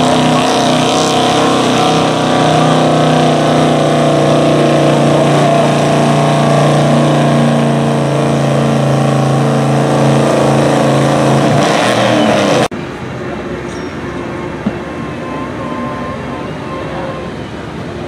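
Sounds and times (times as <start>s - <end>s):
truck engine droning under load: 0.0s - 18.0s.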